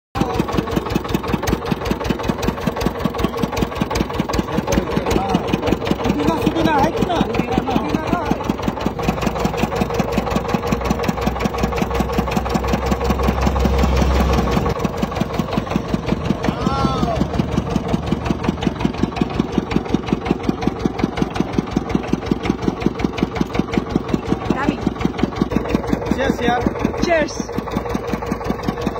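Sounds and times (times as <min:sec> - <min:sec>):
sugarcane crusher engine running: 0:00.2 - 0:28.9
heavy low hum: 0:01.6 - 0:28.6.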